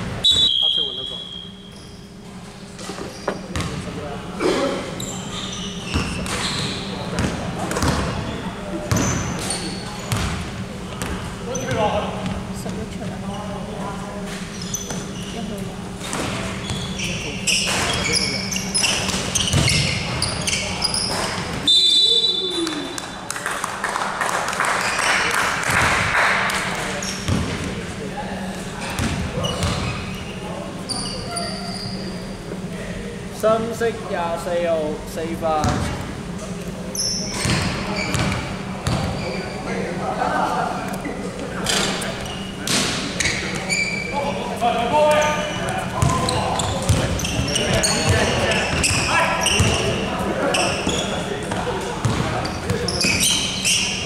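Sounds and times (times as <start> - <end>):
steady hall hum: 0.0 - 54.0
referee's whistle: 0.2 - 2.0, 21.6 - 22.8
basketball bouncing on wooden floor: 7.2 - 8.2, 10.1 - 10.4, 19.1 - 19.8, 46.0 - 46.2, 46.8 - 49.0, 49.6 - 49.8, 52.0 - 52.3.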